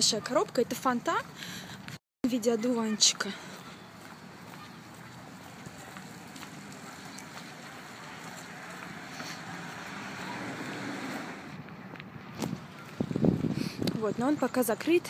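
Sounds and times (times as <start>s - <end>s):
tyres hissing on wet road: 6.0s - 11.6s.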